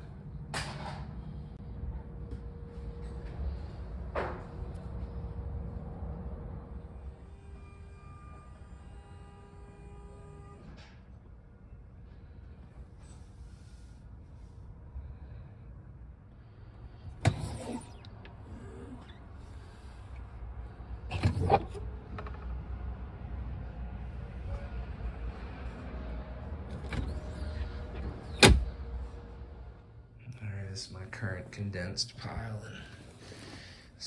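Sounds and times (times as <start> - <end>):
multi-tone whine: 1.4 - 12.4.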